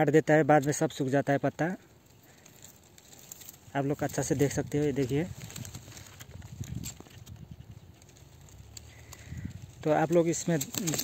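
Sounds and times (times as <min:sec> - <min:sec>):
hand brushing palm fronds: 0:02.0 - 0:11.0.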